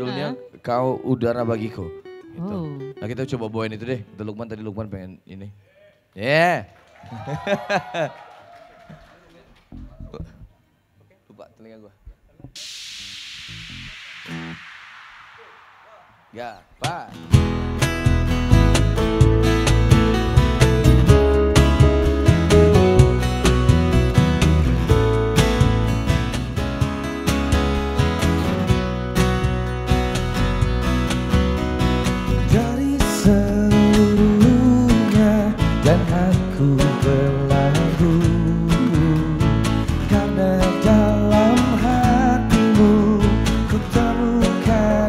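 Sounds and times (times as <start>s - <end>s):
electric keyboard: 0.0s - 3.6s, 18.0s - 32.8s
acoustic guitars strumming: 17.1s - 45.0s
man singing: 32.4s - 45.0s.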